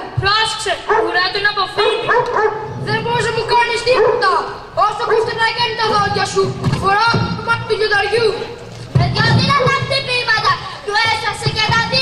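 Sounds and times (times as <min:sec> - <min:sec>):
children imitating dog barks: 0:00.6 - 0:06.4.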